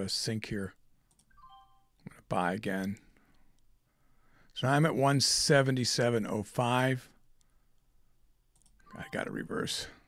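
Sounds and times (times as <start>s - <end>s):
faint computer mouse clicks: 1.1s - 1.3s, 8.5s - 8.9s.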